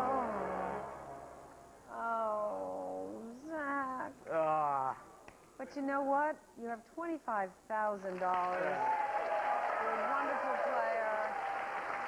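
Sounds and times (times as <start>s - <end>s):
person groaning: 4.3s - 5.0s.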